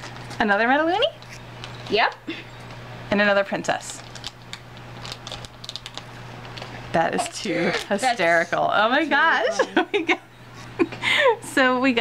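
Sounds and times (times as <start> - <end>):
plastic pouch crinkling being torn: 3.7 - 7.3.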